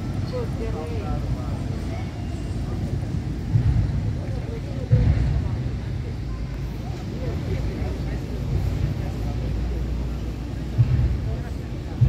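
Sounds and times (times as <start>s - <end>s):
boat engine rumble: 0.0s - 12.0s
faint voices: 0.0s - 12.0s
wind buffeting microphone: 0.0s - 12.0s.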